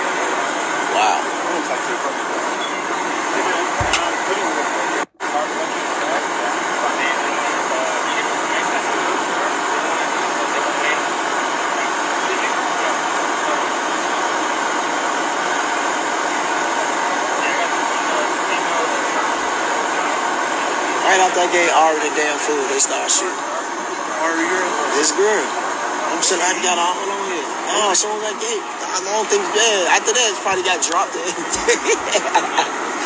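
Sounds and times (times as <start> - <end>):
indistinct voices: 0.0 - 14.4, 16.3 - 33.0
dense outdoor din: 0.0 - 33.0.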